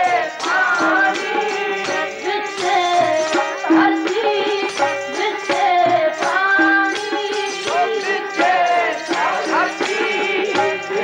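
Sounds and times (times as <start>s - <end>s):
harmonium notes: 0.0s - 11.0s
woman singing: 0.0s - 11.0s.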